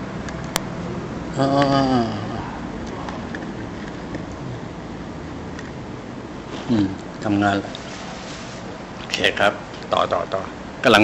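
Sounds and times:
air conditioner whooshing: 0.0 - 11.0.

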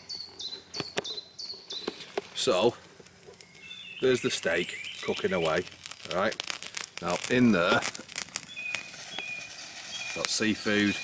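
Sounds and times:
high bird whistles: 3.4 - 5.6, 8.4 - 11.0.

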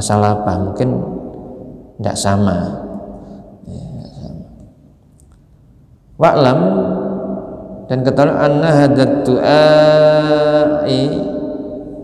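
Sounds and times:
man reading aloud: 0.0 - 1.3, 2.0 - 3.0, 3.6 - 4.6, 6.2 - 11.8.

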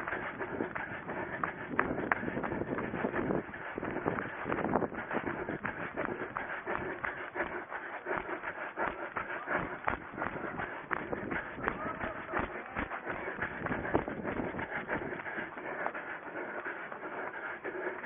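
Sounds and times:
running footfalls: 0.0 - 18.0.

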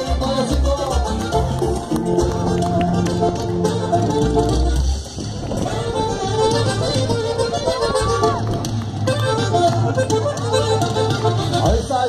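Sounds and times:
mexican folk dance music: 0.0 - 12.0.

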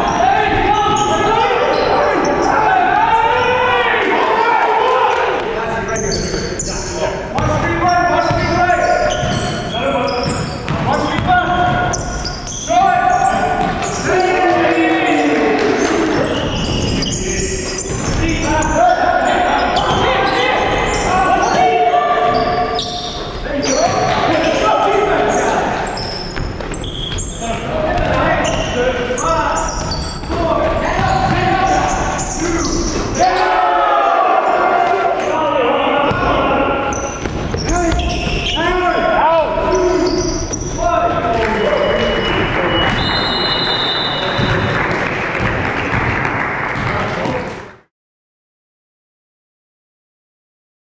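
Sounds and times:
players' voices: 0.0 - 47.8.

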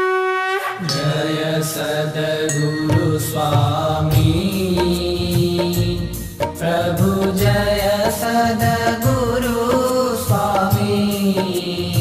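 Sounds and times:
sharp percussive strikes: 0.8 - 12.0.

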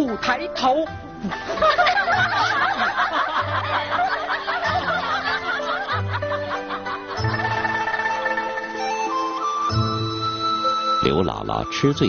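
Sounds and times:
background music: 0.0 - 12.0
women laughing: 1.2 - 7.9.

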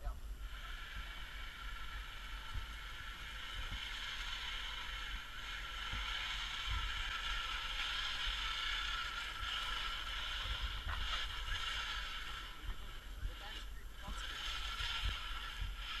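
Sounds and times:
toy truck motor whining: 0.0 - 16.0.

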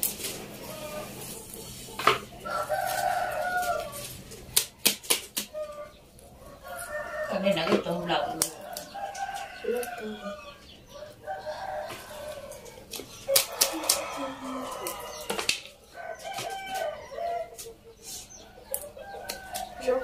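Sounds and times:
greens being picked by hand: 0.0 - 10.6, 11.8 - 20.0
chickens clucking: 0.0 - 20.0
rooster crowing: 2.4 - 4.1, 5.5 - 17.7, 18.6 - 20.0.

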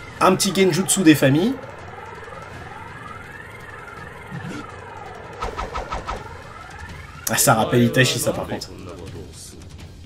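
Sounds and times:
quick run of pulses: 1.6 - 7.2.

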